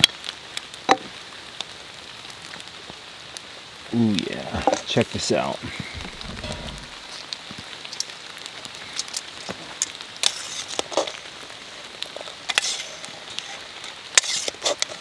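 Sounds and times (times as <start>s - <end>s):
crackles: 0.0s - 15.0s
steady hiss: 3.2s - 15.0s
utensils stirring thick chowder: 12.5s - 15.0s.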